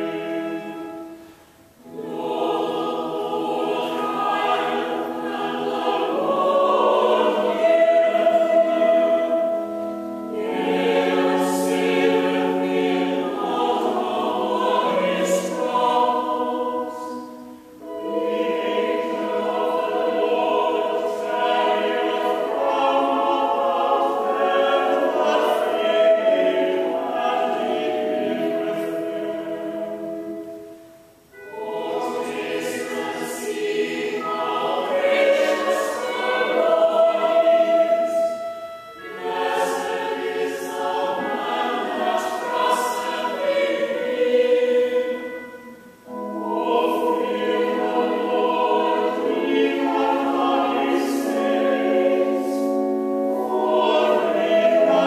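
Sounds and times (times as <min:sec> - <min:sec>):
church choir chanting in harmony: 0:00.0 - 0:55.0.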